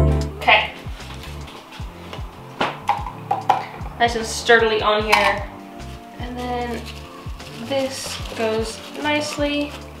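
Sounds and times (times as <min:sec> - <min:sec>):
background music: 0:00.0 - 0:10.0
knocks and clicks handling wood: 0:02.1 - 0:03.8.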